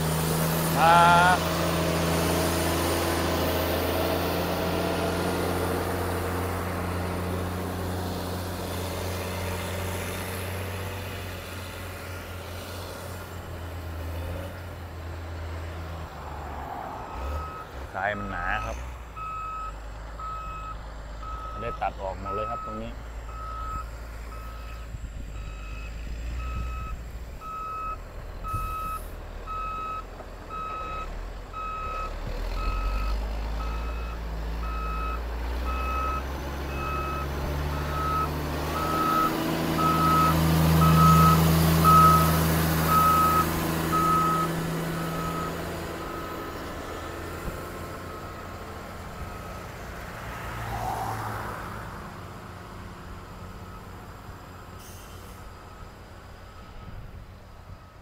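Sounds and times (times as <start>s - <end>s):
diesel engine running: 0.0s - 50.7s
reversing alarm beeping: 17.1s - 46.4s.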